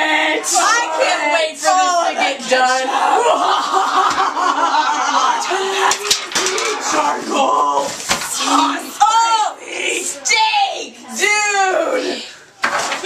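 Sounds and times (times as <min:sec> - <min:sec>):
people talking and shouting: 0:00.0 - 0:13.0.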